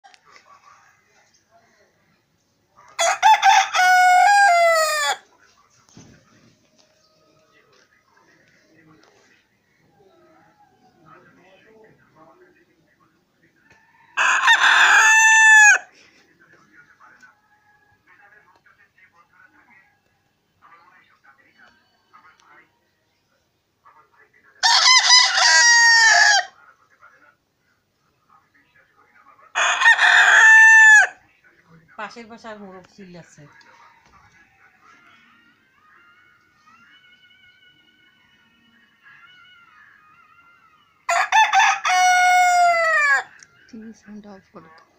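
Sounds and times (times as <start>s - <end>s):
rooster crowing: 3.0s - 5.2s, 13.7s - 15.9s, 24.6s - 26.6s, 29.6s - 31.2s, 41.1s - 43.4s.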